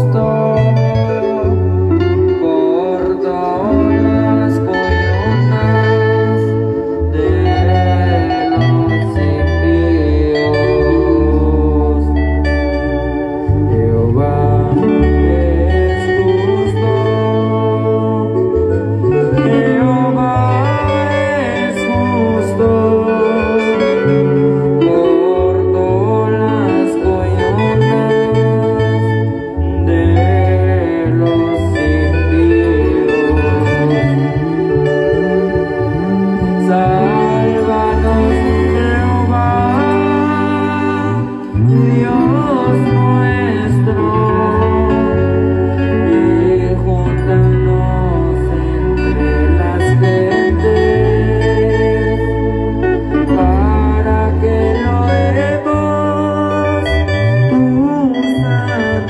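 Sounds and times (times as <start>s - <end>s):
live band playing a hymn: 0.0s - 59.0s.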